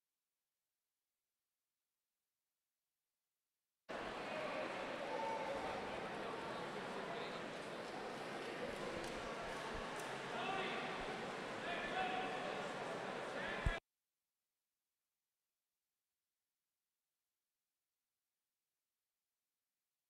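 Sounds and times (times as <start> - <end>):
murmur of spectators talking: 3.9 - 13.8.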